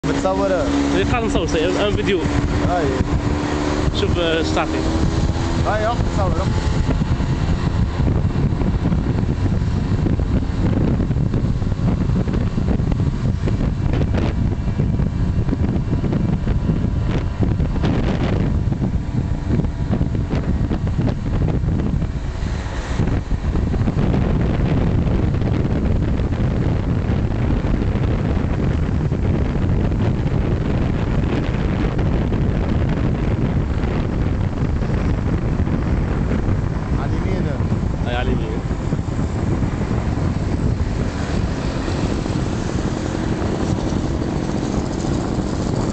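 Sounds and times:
motorcycle engine running: 0.0s - 45.9s
wind buffeting microphone: 0.0s - 45.9s.

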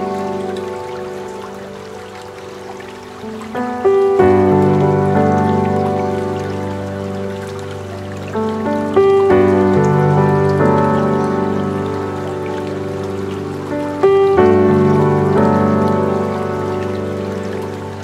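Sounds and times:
calm piano music: 0.0s - 18.0s
soft water sound: 0.0s - 18.0s.

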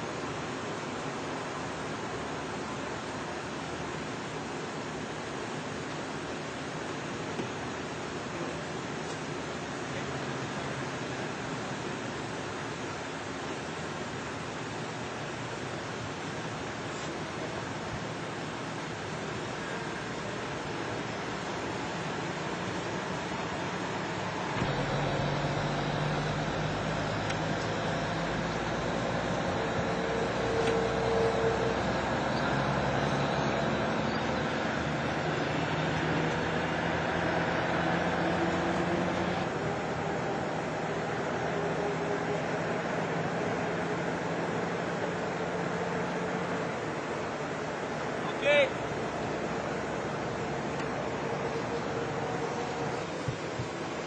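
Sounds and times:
outdoor noise hiss: 0.0s - 54.0s
vehicle engine idling: 16.5s - 54.0s.

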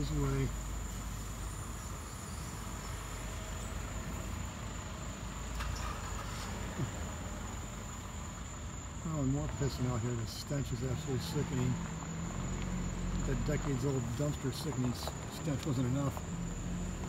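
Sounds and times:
insects chirping: 0.0s - 17.0s
truck engine idling: 0.0s - 17.0s.

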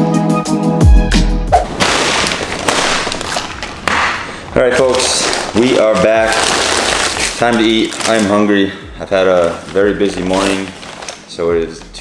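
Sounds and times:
paper bag rustling: 1.6s - 12.0s.

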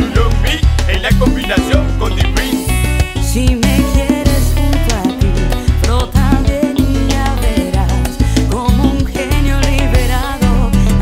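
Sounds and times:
salsa band music: 0.0s - 11.0s.

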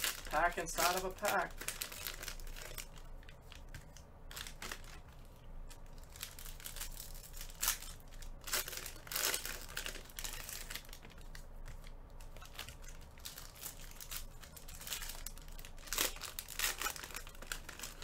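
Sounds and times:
cards rustling: 0.0s - 18.0s
wrappers crinkling and tearing: 0.0s - 18.0s.

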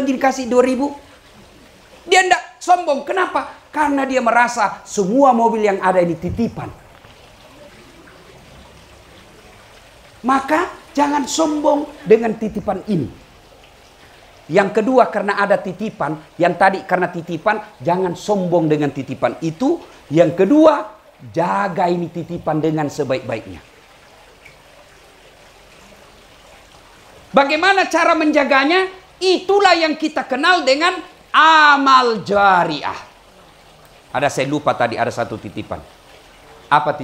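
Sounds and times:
low background hiss: 0.0s - 37.0s.

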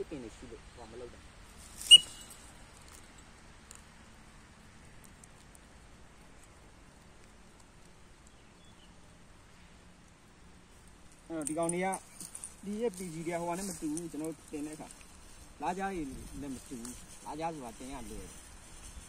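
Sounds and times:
sharp high-pitched chirp: 1.8s - 2.4s
person speaking: 11.3s - 15.0s, 15.6s - 18.4s.

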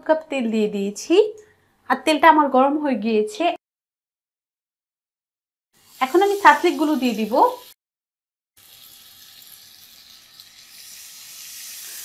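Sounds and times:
skewers sizzling in hot oil: 5.8s - 7.8s, 8.6s - 12.0s.

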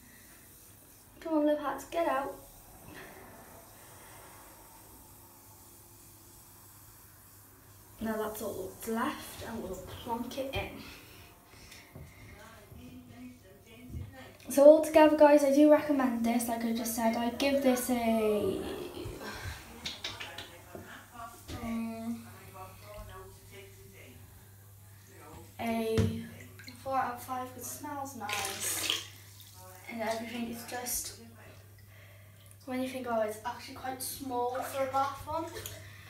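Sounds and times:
faint steady hiss: 0.0s - 36.0s
low hum: 1.8s - 13.9s, 15.7s - 26.7s.

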